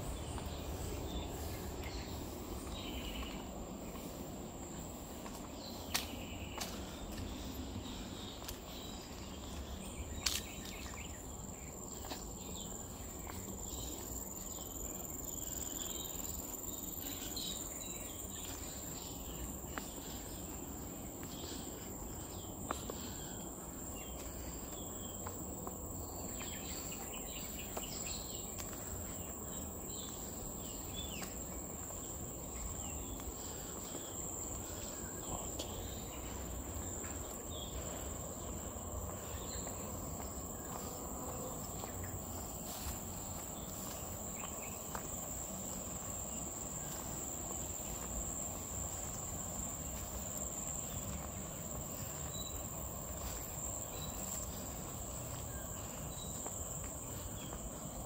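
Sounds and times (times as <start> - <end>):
insects droning: 0.0 - 58.0.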